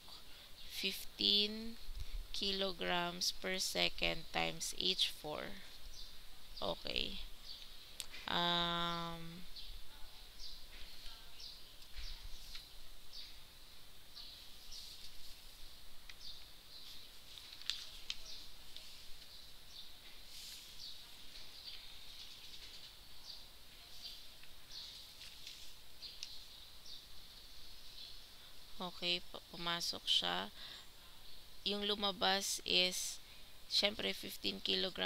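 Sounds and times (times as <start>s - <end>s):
steady high hum: 0.0s - 22.2s.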